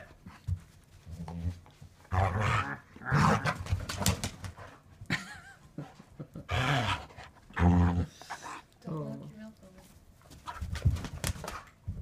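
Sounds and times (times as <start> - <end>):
person laughing: 5.0 - 6.6.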